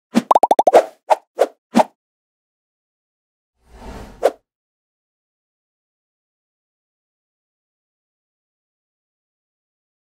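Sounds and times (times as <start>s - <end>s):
cartoon pops: 0.2s - 0.9s
pitched plops bending down: 0.3s - 0.7s.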